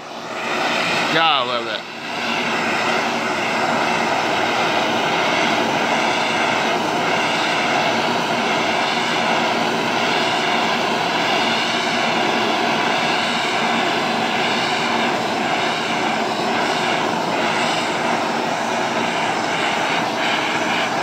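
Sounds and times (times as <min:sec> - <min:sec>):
gas torch roaring: 0:00.0 - 0:21.0.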